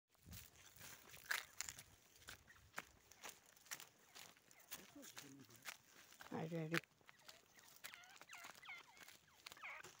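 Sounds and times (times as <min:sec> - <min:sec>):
partridge chirping calls: 0:00.6 - 0:06.2, 0:06.8 - 0:10.0.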